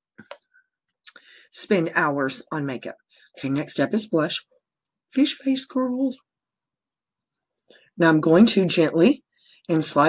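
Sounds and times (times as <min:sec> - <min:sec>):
woman speaking: 0:01.5 - 0:04.5, 0:08.0 - 0:10.0.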